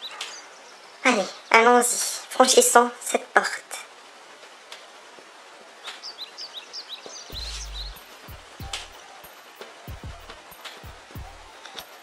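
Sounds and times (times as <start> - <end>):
faint outdoor ambience: 0.0 - 12.0
quick short bird chirps: 6.0 - 8.0
dull low thumps: 7.3 - 9.0.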